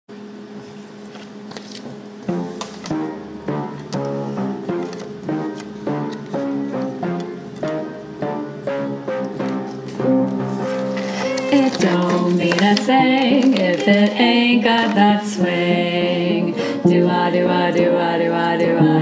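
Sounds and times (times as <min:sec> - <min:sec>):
swing jazz held chord: 0:02.2 - 0:19.0
plucked notes on a steady beat: 0:02.3 - 0:11.5.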